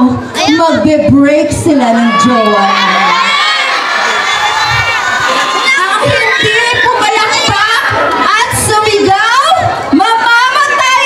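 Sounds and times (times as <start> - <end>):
crowd cheering and screaming: 1.8 - 11.0.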